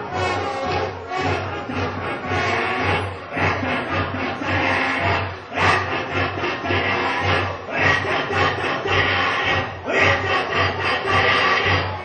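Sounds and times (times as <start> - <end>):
live band with brass: 0.0 - 12.0
low pulsing beat: 0.0 - 12.0.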